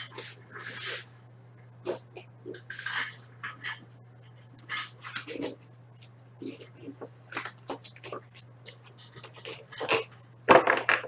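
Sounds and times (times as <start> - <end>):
cards rustling and scraping: 0.0 - 1.1, 1.8 - 10.2
low electrical hum: 0.0 - 11.0.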